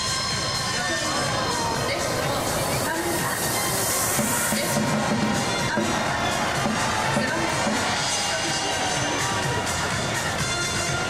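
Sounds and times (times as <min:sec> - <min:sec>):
stadium crowd noise: 0:00.0 - 0:11.0
reverberant public-address voice: 0:00.2 - 0:11.0.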